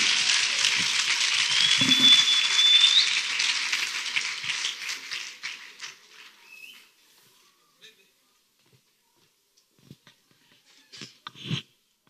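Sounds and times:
congregation applauding: 0.0 - 7.0
high rising whistle: 1.5 - 3.2.

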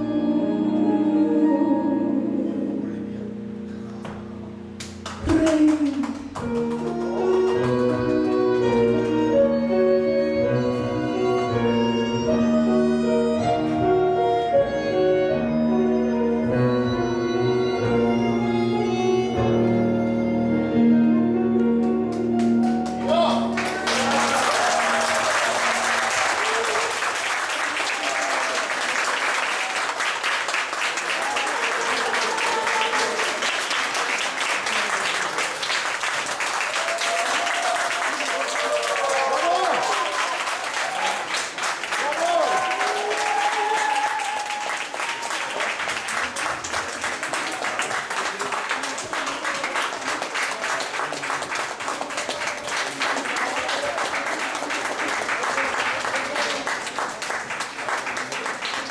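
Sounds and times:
audience applauding: 4.8 - 9.3, 22.1 - 58.9
audience cheering: 23.1 - 35.1, 36.4 - 50.1.

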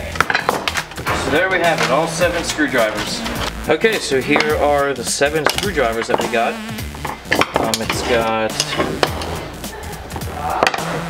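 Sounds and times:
background music: 0.0 - 11.0
screwdrivers sliding over wood: 7.0 - 9.6
screwdrivers clacking together: 7.1 - 9.3.

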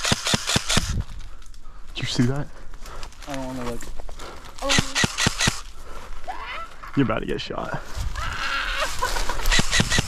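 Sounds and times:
airsoft gun shots: 0.0 - 0.9
person calling: 4.6 - 5.3.

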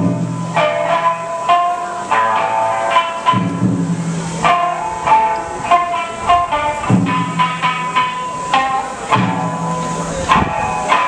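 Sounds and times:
plucked shamisen notes: 0.0 - 11.0.

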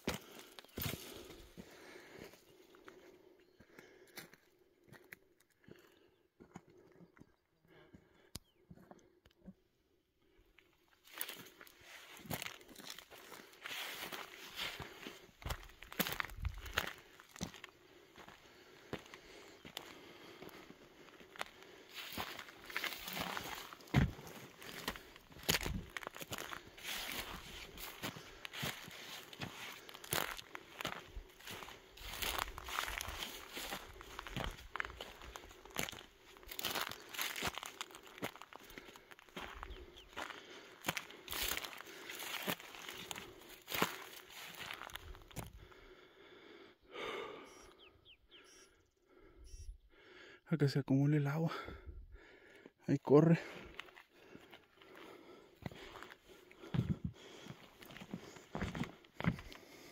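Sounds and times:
footsteps crunching on stony dirt: 0.0 - 9.6, 10.6 - 46.0, 53.2 - 59.9.

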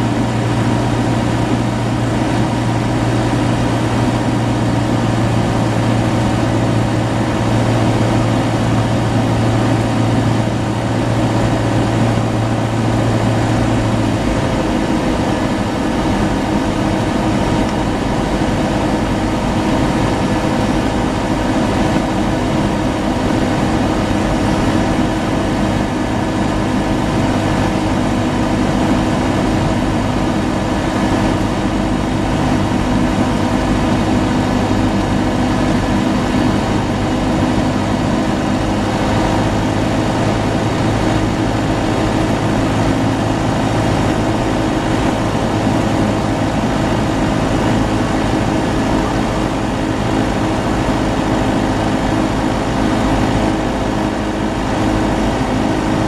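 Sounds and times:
propeller plane engine running: 0.0 - 56.0.

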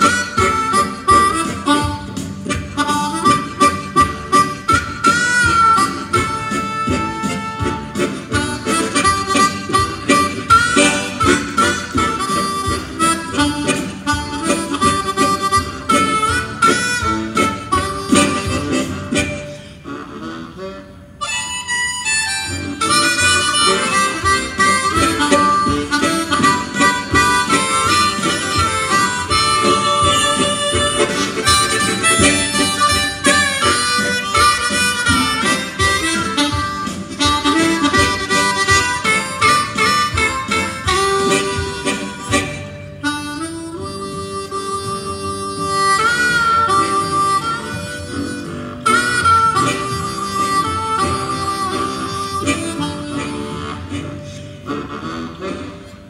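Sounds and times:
backing track: 0.0 - 56.0
harmonica ensemble playing: 0.0 - 56.0
lead harmonica melody: 0.0 - 56.0.

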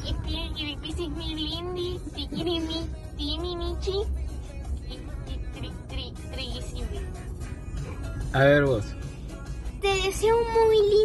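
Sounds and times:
high child-like voice singing: 0.0 - 4.1, 9.8 - 11.0
low vehicle interior rumble: 0.0 - 11.0.

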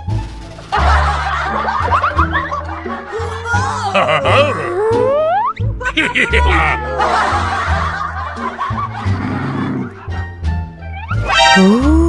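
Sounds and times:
background music with bass line: 0.0 - 12.0
snickering laughter: 3.9 - 10.1.

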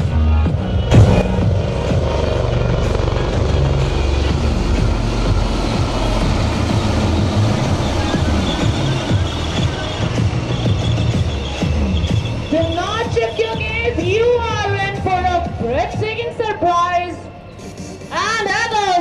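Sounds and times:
background music: 0.0 - 19.0
helicopter rotors chopping: 0.6 - 18.9.

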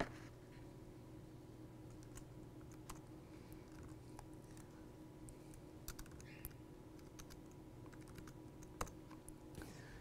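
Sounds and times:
low room hum: 0.0 - 10.0
computer keyboard clicks: 1.9 - 4.0, 5.9 - 6.3, 7.0 - 9.3.

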